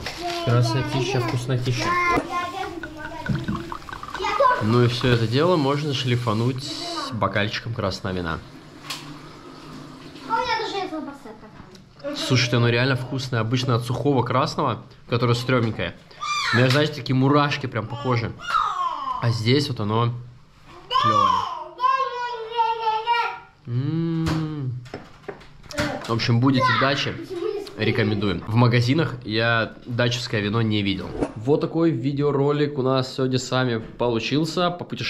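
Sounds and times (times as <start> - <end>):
man talking: 4.6 - 8.4.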